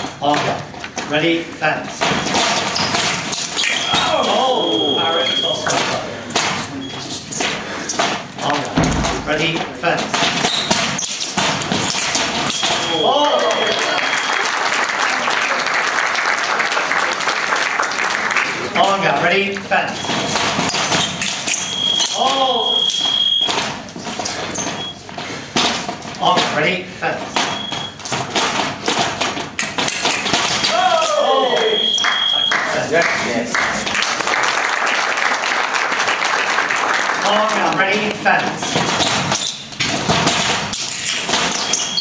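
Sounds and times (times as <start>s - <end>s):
taps and thumps of feet and blades: 0.0s - 4.4s, 5.5s - 13.7s, 19.6s - 32.6s, 37.2s - 42.0s
spectators calling out: 30.6s - 32.9s
high-pitched scoring beep: 31.4s - 32.6s.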